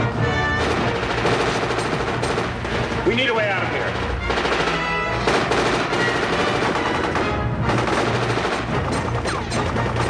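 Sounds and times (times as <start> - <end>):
action film music: 0.0 - 10.0
crackling and banging effects: 0.0 - 10.0.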